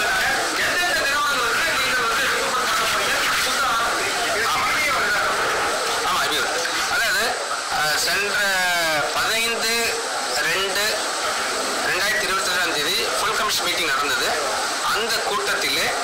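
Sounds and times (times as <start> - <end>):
man talking: 0.0 - 11.1, 11.8 - 16.0.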